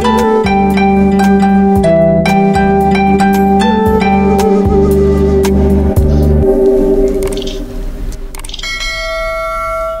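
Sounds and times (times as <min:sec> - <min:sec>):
bansuri flute: 0:00.0 - 0:07.7
backing track: 0:00.0 - 0:08.5
sustained bell chime: 0:08.6 - 0:10.0.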